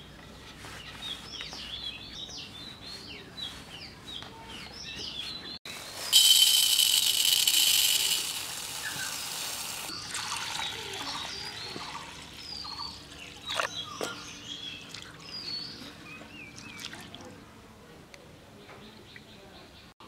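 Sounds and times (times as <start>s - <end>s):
birds chirping: 0.0s - 17.5s
water pouring onto lentils: 6.2s - 12.5s.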